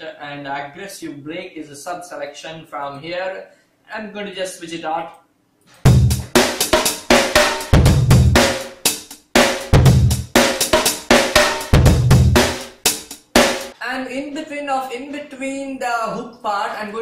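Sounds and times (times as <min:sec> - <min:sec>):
breakbeat drum kit: 0:05.8 - 0:14.5.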